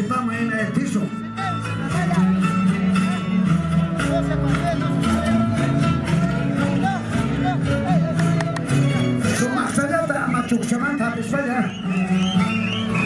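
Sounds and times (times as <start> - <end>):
live band with guitars: 0.0 - 13.0.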